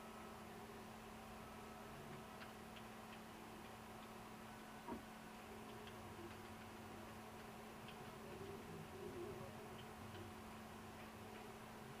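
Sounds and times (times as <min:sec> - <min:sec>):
light ticks: 0:02.1 - 0:04.8, 0:05.6 - 0:08.6.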